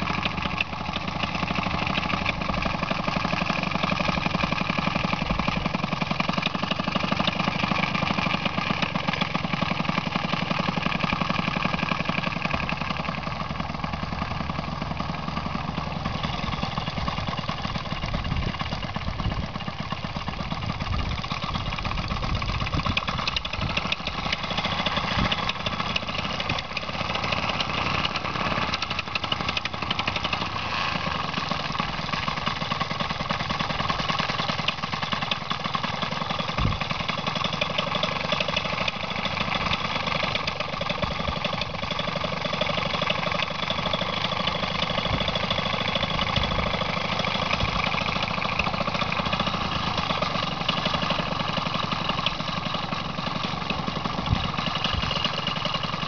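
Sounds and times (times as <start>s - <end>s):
paramotor engine idling: 0.0s - 56.0s.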